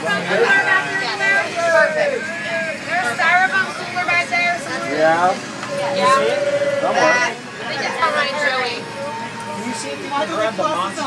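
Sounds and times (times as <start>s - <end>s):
trolley running noise: 0.0s - 11.0s
voices talking: 0.0s - 11.0s.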